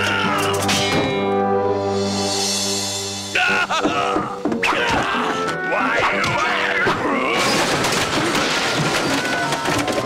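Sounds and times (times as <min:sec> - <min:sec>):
background music: 0:00.0 - 0:08.1
cartoon crashing and rattling: 0:07.2 - 0:10.0.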